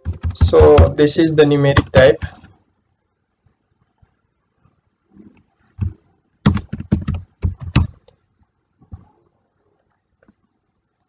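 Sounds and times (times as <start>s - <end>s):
mouse clicks: 9.8s - 10.4s.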